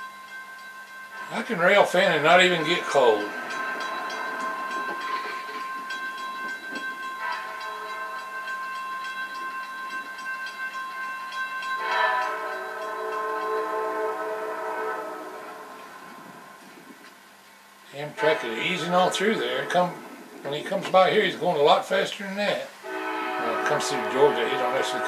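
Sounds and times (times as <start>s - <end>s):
locomotive horn blasts through tv speakers: 11.8s - 16.6s, 18.2s - 19.7s, 22.8s - 25.0s.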